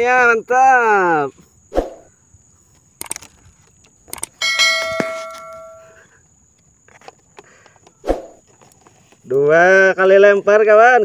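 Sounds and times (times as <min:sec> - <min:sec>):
bell ding: 0:04.4 - 0:06.0.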